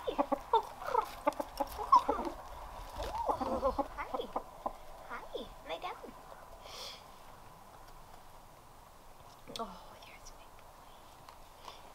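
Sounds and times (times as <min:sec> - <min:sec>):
rooster clucking: 0:00.0 - 0:04.9.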